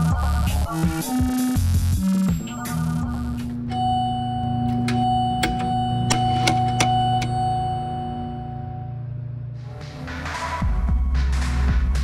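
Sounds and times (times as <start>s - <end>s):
low synth drone: 2.4s - 10.1s.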